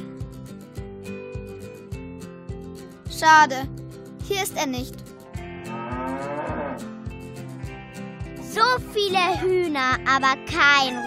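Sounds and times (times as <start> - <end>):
background music with beat: 0.0 - 3.1, 5.0 - 9.0
cow mooing: 5.4 - 6.9.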